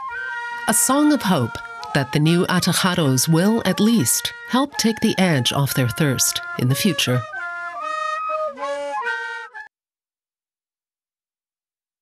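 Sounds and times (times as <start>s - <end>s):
end-blown cane flutes playing: 0.0s - 9.7s.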